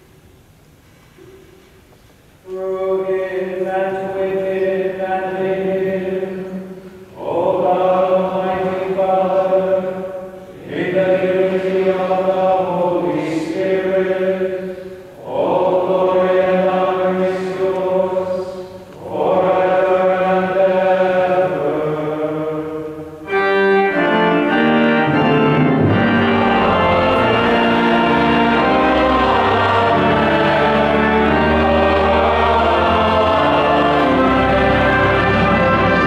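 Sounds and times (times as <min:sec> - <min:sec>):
voices singing liturgical chant: 0:02.5 - 0:36.0
low organ note: 0:23.2 - 0:36.0.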